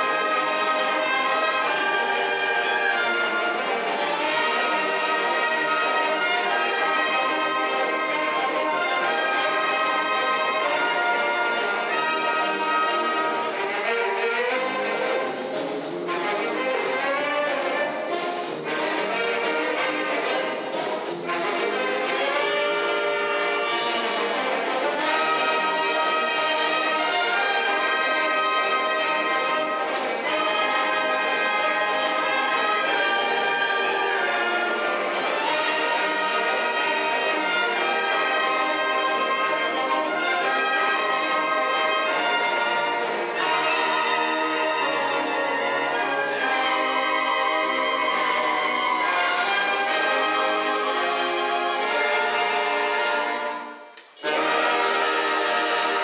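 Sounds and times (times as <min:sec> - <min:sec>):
wind band playing: 0:00.0 - 0:56.0.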